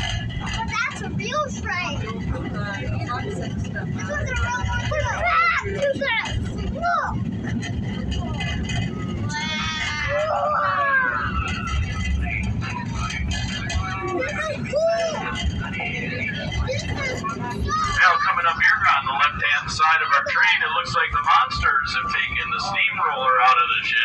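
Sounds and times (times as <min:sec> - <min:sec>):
people's voices: 0:00.0 - 0:24.0
train car rumbling on track: 0:00.0 - 0:24.0.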